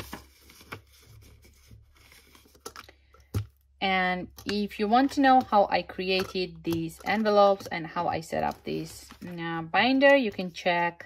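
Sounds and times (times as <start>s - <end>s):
rustling of paper and plastic: 0.0s - 3.6s, 7.0s - 9.6s.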